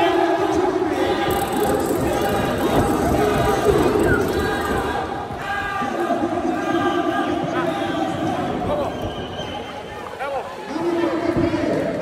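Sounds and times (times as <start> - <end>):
crowd shouting: 0.0 - 11.5.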